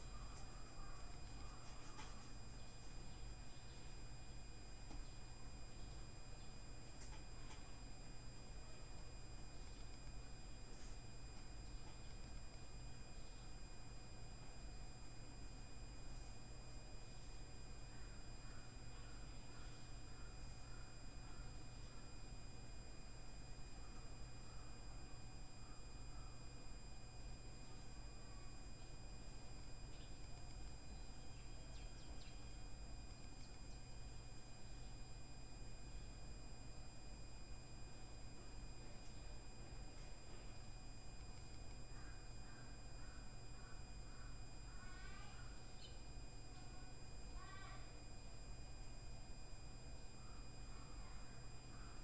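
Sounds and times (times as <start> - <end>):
faint high whining tones: 0.0 - 52.0
low electrical hum: 0.0 - 52.0.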